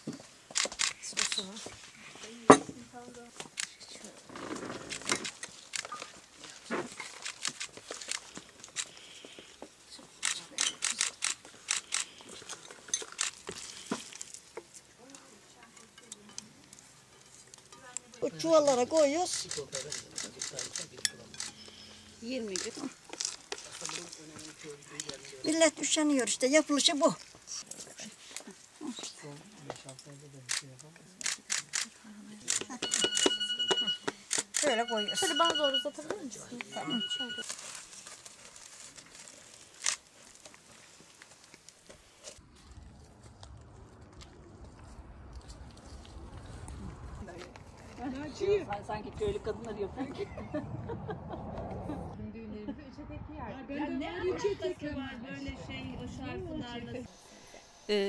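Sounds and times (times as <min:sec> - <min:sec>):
high electronic beep tone: 0:32.8 - 0:34.1, 0:34.7 - 0:36.0, 0:36.7 - 0:37.4, 0:57.1 - 0:58.0.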